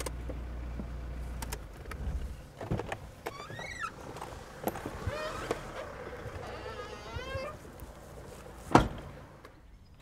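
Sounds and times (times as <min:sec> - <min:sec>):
car door creaking open: 0:02.6 - 0:07.8, 0:08.7 - 0:09.1.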